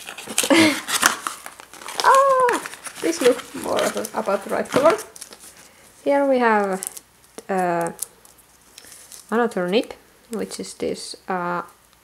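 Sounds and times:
cardboard tearing: 0:00.0 - 0:05.6
cardboard rustling and scraping: 0:00.0 - 0:07.0.

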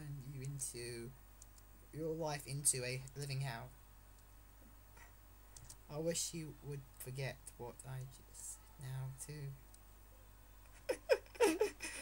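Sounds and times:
person speaking: 0:00.0 - 0:01.2, 0:01.9 - 0:03.7
soft clicks: 0:01.4 - 0:01.7, 0:05.0 - 0:05.9, 0:09.6 - 0:09.9.

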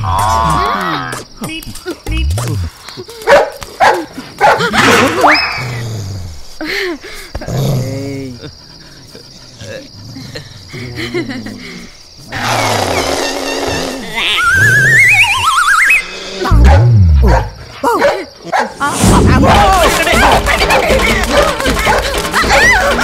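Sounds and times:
dog growling and barking: 0:16.4 - 0:17.6.

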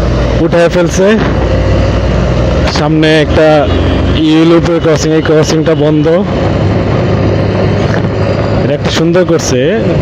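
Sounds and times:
motorcycle engine humming: 0:00.0 - 0:10.0.

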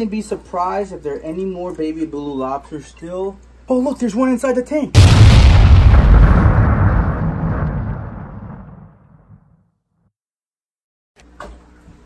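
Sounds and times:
explosion rumble: 0:05.0 - 0:09.6.

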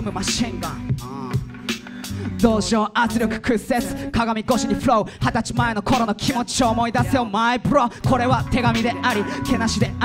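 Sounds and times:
hip hop beat: 0:00.0 - 0:10.0
rapped vocals: 0:00.0 - 0:10.0.

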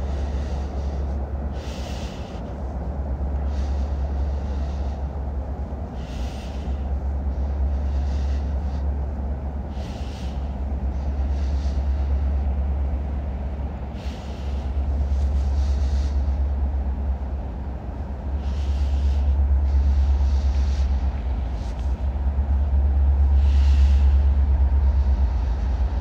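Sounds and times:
diesel locomotive engines rumbling: 0:00.0 - 0:26.0.

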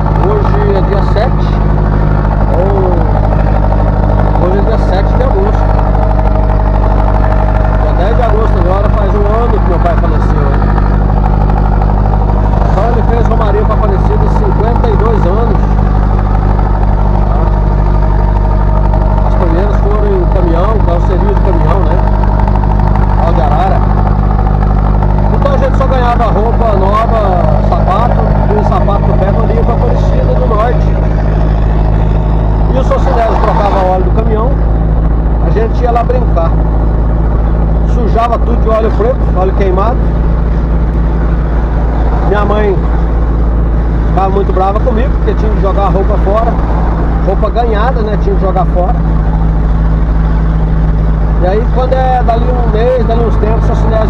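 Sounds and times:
vehicle engine drone: 0:00.0 - 0:54.0.

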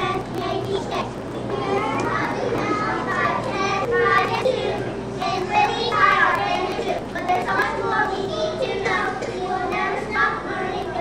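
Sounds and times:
young children chattering: 0:00.0 - 0:11.0.

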